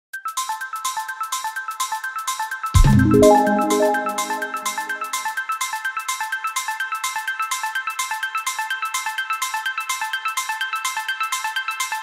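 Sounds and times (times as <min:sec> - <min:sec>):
quick high-note melody: 0:02.8 - 0:05.2.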